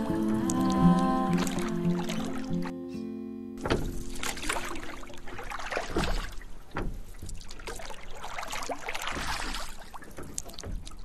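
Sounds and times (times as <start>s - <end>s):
oars splashing water: 0.0s - 2.7s, 3.6s - 11.0s
water drips and gurgles: 0.0s - 2.7s, 3.6s - 11.0s.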